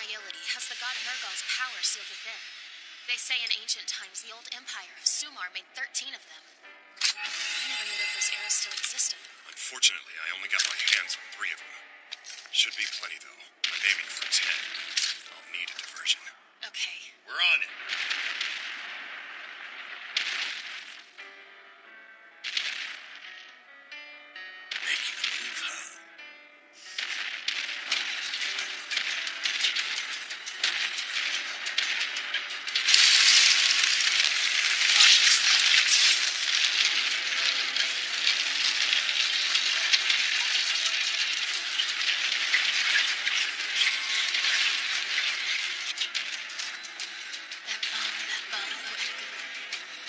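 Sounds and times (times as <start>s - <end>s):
dramatic anime soundtrack music: 0.0s - 41.0s
battle sound effects: 12.6s - 14.7s, 17.3s - 19.0s, 24.8s - 26.0s
dense crackling wash: 27.0s - 45.9s.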